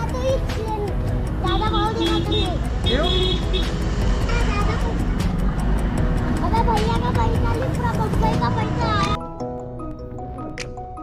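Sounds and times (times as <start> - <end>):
motorbikes and vehicles passing: 0.9 - 9.2.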